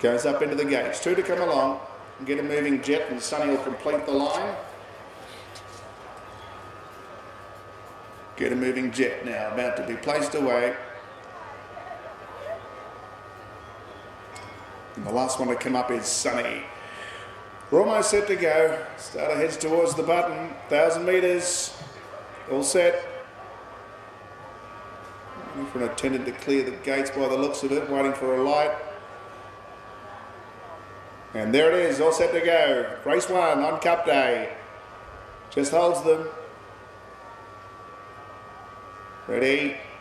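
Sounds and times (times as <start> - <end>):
faint hum and hiss: 0.0 - 40.0.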